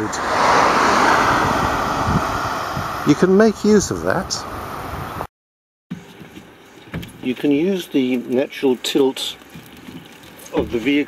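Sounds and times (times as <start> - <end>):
car passing: 0.0 - 5.3.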